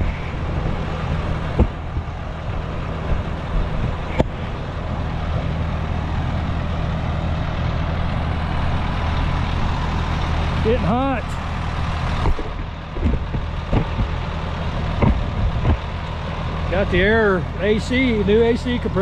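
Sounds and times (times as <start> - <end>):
diesel engine running: 0.0 - 19.0
sharp knocks: 1.5 - 2.0, 12.2 - 14.2, 15.0 - 15.8.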